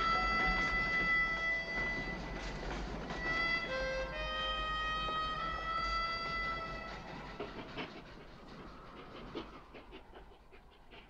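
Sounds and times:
faint clicks and rustles: 0.0 - 11.0.

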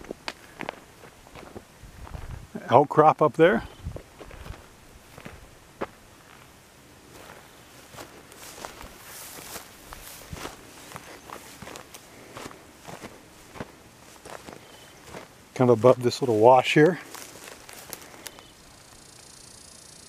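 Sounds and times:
footsteps on stony dirt and grass: 0.0 - 19.0.

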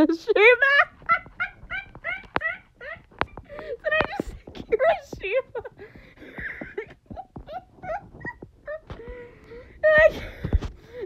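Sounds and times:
person laughing breathlessly: 0.8 - 4.5, 5.6 - 11.0.

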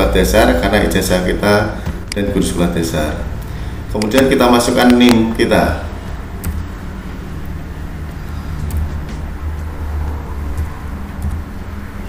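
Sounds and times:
computer keyboard clicks: 6.4 - 6.7, 8.6 - 9.7, 10.5 - 11.5.

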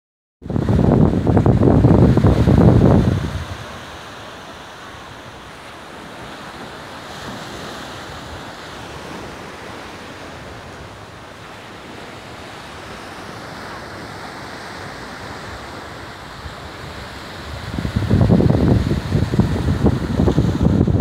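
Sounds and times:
wind blowing across microphone: 0.4 - 21.0.

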